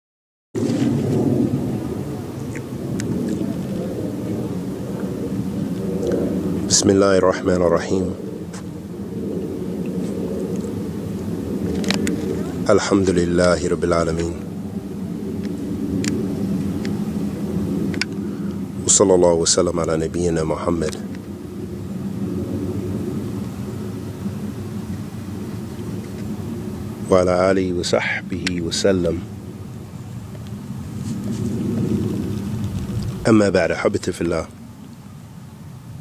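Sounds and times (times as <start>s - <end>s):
loud low rumble: 0.6s - 34.3s
low mechanical hum: 0.6s - 36.0s.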